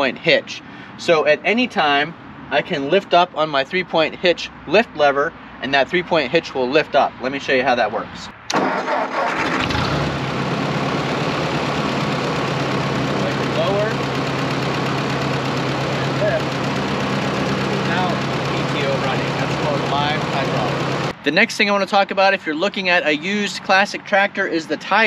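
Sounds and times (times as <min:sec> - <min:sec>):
tractor engine starting: 0:08.5 - 0:21.1
tractor engine idling: 0:08.5 - 0:22.0.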